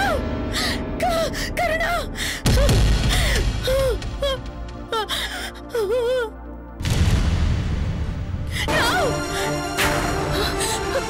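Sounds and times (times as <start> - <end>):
woman sobbing and gasping: 0.0 - 6.5, 8.5 - 11.0
dramatic background music: 0.0 - 11.0.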